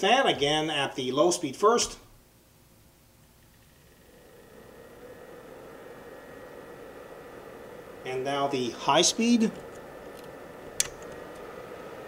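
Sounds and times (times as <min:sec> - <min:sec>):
cooling fan whooshing with faint whine: 0:00.0 - 0:12.0.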